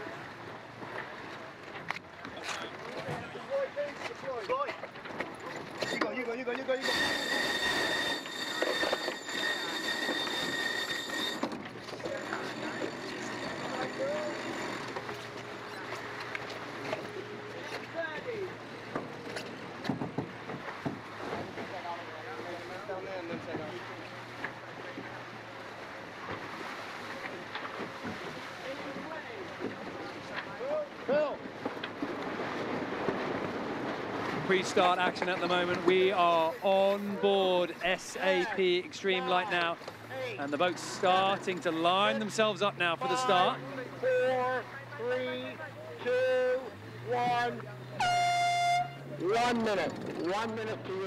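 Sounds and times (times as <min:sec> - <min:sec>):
rush of wind and water: 0:00.0 - 0:47.4
crew calling out: 0:05.8 - 0:16.1, 0:34.5 - 0:51.0
steady high tone: 0:06.8 - 0:15.8.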